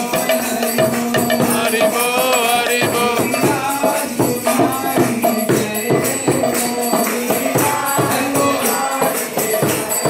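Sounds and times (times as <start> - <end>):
hand drum: 0.0 - 10.0
jingling percussion: 0.0 - 10.0.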